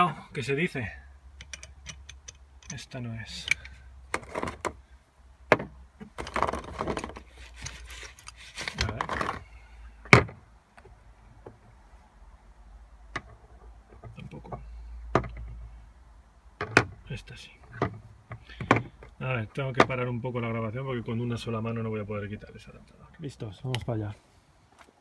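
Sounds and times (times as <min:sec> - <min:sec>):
metal sockets clinking: 0:01.4 - 0:04.7
plastic rustling: 0:06.3 - 0:09.5.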